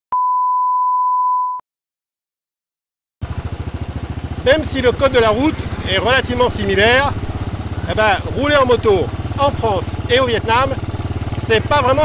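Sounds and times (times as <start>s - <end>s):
motorcycle engine running: 3.2s - 12.0s.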